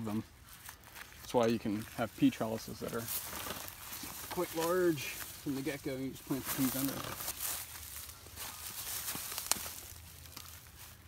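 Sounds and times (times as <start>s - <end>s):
foliage rustling: 0.0s - 11.0s.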